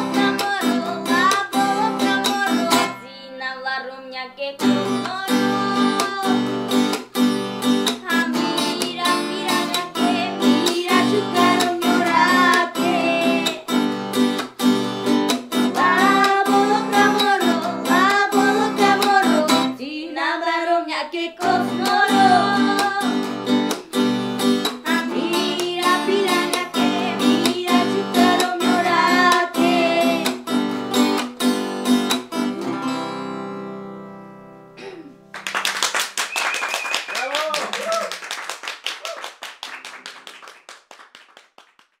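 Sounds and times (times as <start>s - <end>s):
acoustic guitar strumming: 0.0s - 3.1s, 4.6s - 19.8s, 21.4s - 35.3s
girl singing: 0.0s - 6.7s, 7.9s - 13.8s, 15.6s - 23.6s, 24.7s - 30.6s
people clapping: 10.5s - 14.6s, 35.3s - 42.0s.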